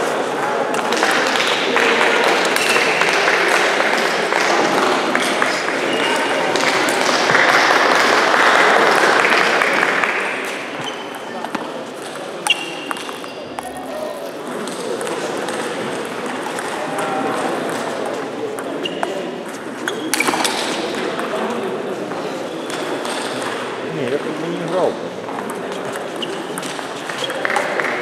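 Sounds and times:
chatter in a large hall: 0.0s - 28.0s.

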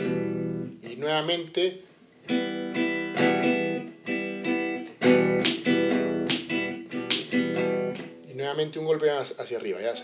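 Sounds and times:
acoustic guitar strumming: 0.0s - 1.6s, 2.2s - 8.3s.

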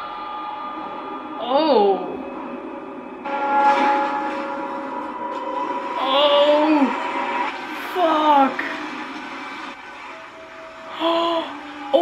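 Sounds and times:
ringing bell-like chord: 0.0s - 7.2s.

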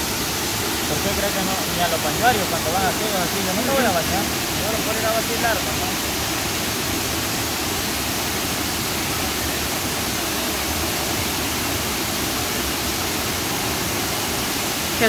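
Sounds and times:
waterfall rushing: 0.0s - 15.0s.

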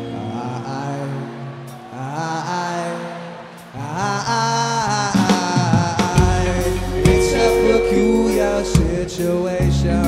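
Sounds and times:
live rock band music: 3.1s - 10.0s
held notes sliding upward: 6.2s - 9.6s.

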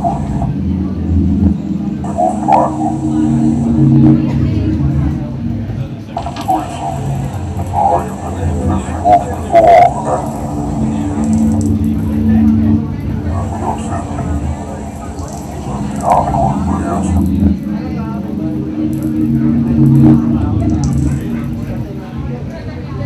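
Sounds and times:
indistinct voices: 0.0s - 23.0s
low synthesizer tones: 0.0s - 23.0s.

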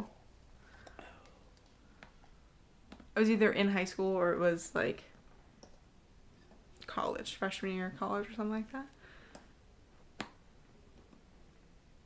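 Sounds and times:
woman speaking: 3.2s - 5.1s, 6.8s - 9.0s.

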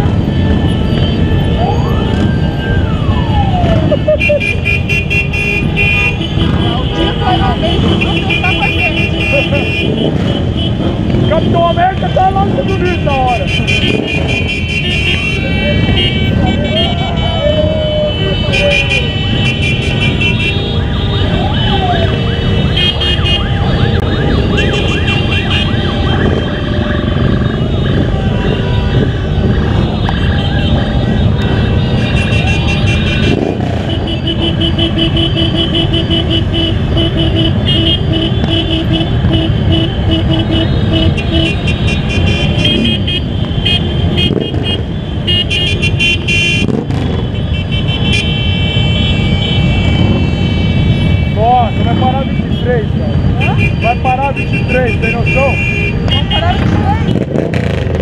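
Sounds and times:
vehicle horns tooting: 0.0s - 1.7s, 3.8s - 26.6s, 27.2s - 57.8s
motorcycle engines: 0.0s - 58.0s
wind noise on microphone: 13.5s - 34.1s, 38.3s - 52.4s.

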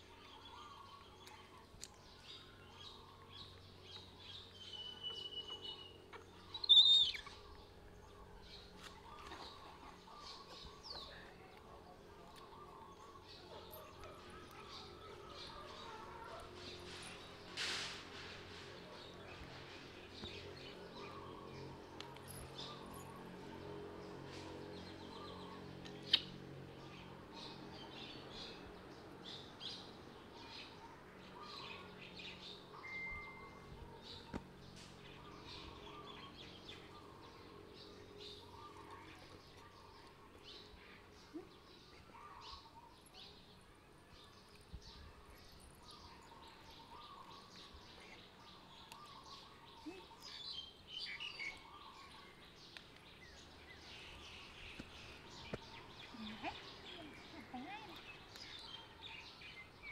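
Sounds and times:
small birds chirping: 0.0s - 59.9s.

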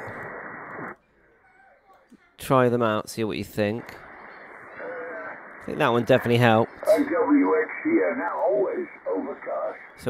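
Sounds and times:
faint radio hiss: 0.0s - 10.0s
person speaking over radio: 4.8s - 10.0s.

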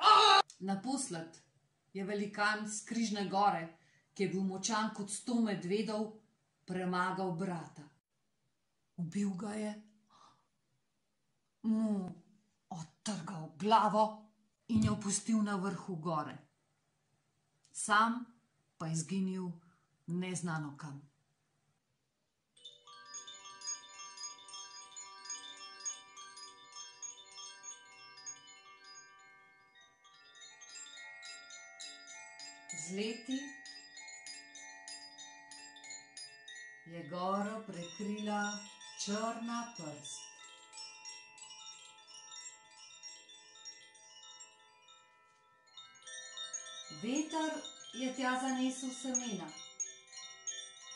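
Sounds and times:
bamboo wind chimes ringing: 22.6s - 50.9s.

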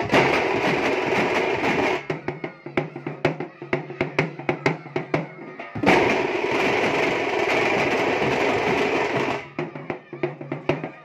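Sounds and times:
drum troupe beating drums: 0.0s - 11.0s.

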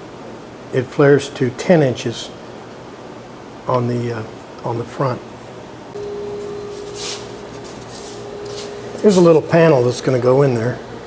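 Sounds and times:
steady hum: 2.3s - 11.0s.

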